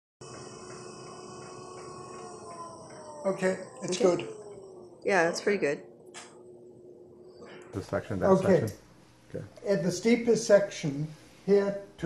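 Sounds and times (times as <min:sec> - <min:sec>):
stair lift motor whining: 0:00.2 - 0:06.3.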